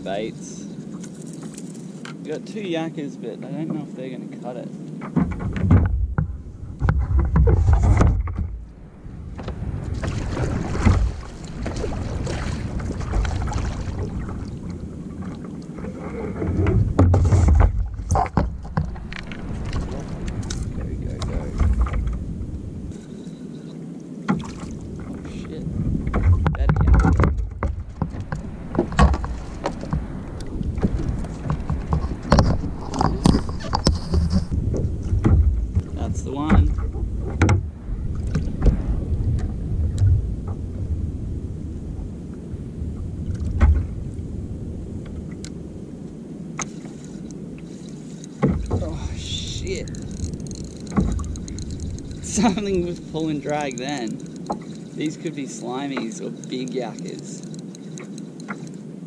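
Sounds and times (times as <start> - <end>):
water lapping against kayak hull: 0.0 - 59.0
fishing rod and reel clicks: 46.6 - 48.8, 49.6 - 58.9.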